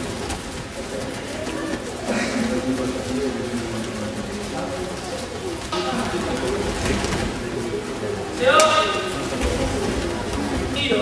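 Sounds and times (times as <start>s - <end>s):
many voices talking: 0.0s - 11.0s.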